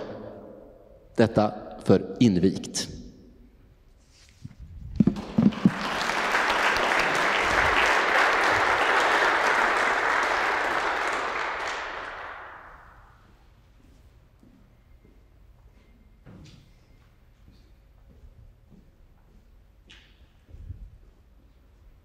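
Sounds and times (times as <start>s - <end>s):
microphone knocks: 4.8s - 5.8s
audience applauding: 5.0s - 13.2s.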